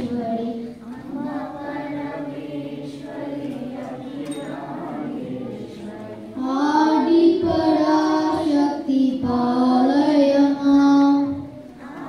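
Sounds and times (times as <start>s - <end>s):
woman and children singing: 0.0s - 12.0s.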